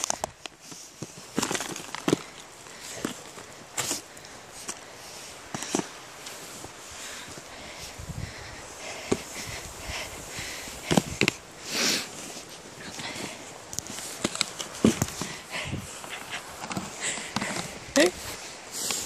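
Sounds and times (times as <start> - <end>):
snow crunching and scraping: 0.0 - 19.0.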